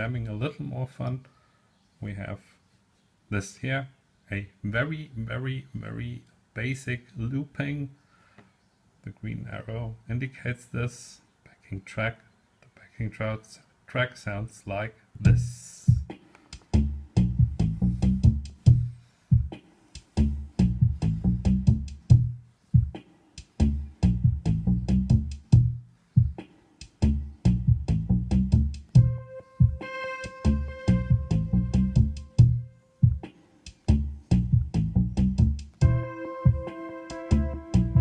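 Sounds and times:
drum-machine beat: 15.3 - 38.0
synth bassline: 27.5 - 33.2, 34.4 - 38.0
sustained synth pad chord: 29.0 - 32.0, 35.8 - 38.0.

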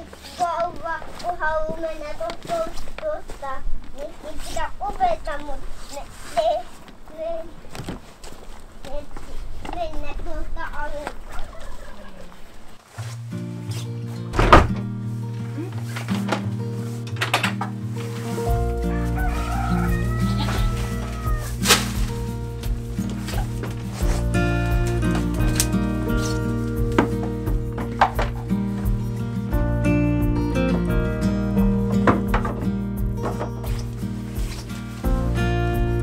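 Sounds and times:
chickens clucking: 11.1 - 12.8, 18.5 - 21.6
background music sustained chords: 13.1 - 36.0
sharp knocks: 31.9 - 34.0.

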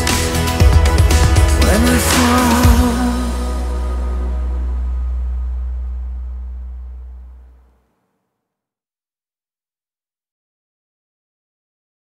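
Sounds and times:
sustained deep bass tone: 0.0 - 7.7.

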